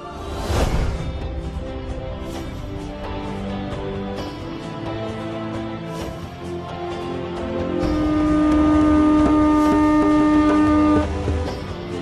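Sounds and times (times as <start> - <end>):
conch shell horn note: 7.8 - 11.5.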